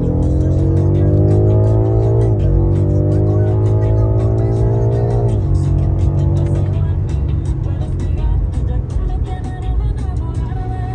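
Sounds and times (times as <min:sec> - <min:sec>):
car engine accelerating with upshift: 0:00.0 - 0:10.9
music playing: 0:00.0 - 0:10.9.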